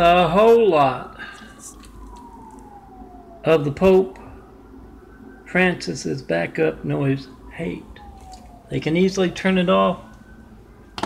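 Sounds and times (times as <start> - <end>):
distant siren falling: 0.0 - 11.0.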